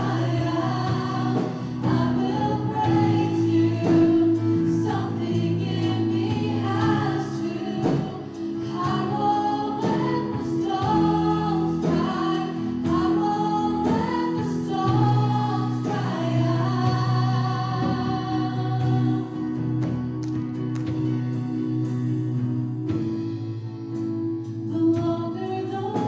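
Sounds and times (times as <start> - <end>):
group of voices singing: 0.0 - 20.0
acoustic guitar: 0.0 - 26.0
drums: 0.0 - 26.0
keyboard: 0.0 - 26.0.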